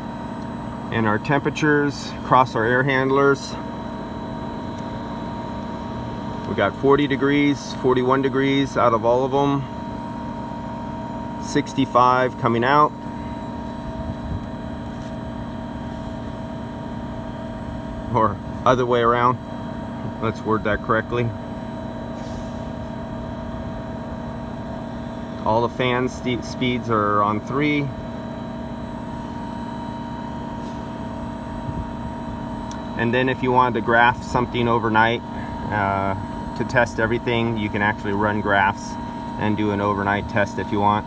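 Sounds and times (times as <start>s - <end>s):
air conditioner unit humming: 0.0s - 41.0s
fan air whoosh: 0.0s - 41.0s.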